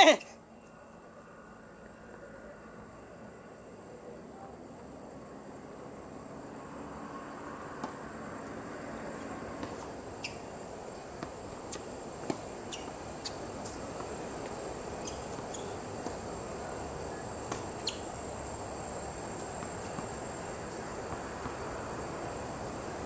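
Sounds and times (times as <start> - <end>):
steady background hiss: 0.0 - 23.0
ball bouncing on hard court: 9.6 - 10.4.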